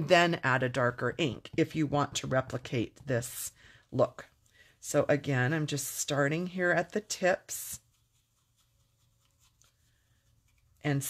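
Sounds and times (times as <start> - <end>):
woman speaking: 0.0 - 7.8
brush scratching on paper: 5.3 - 11.0.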